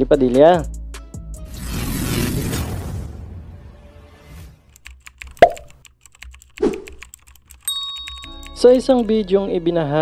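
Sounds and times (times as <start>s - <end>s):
rapid keyboard typing clicks: 4.7s - 9.2s
plops dropping in pitch: 5.3s - 5.8s
bell-like ding: 7.7s - 8.8s.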